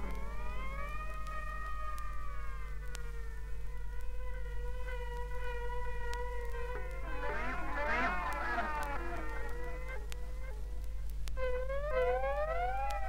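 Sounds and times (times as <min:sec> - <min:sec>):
sustained electronic tone bending in pitch: 0:00.0 - 0:10.8
faint clicks: 0:00.0 - 0:13.0
low steady hum: 0:00.0 - 0:13.0.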